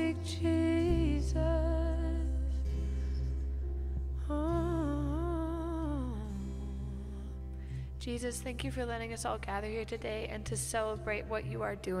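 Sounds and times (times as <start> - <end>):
woman singing with vibrato: 0.0 - 2.7, 4.3 - 7.4.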